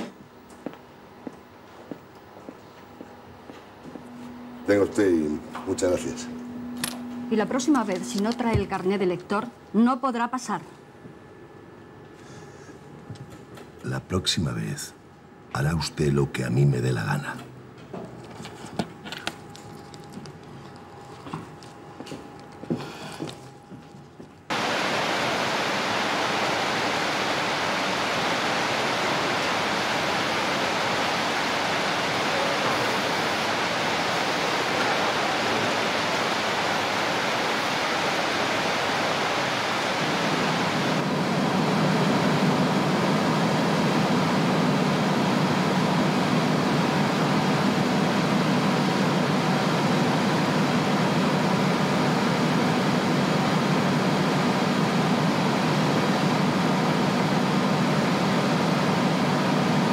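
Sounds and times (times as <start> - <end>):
deep hum: 3.9 - 9.1.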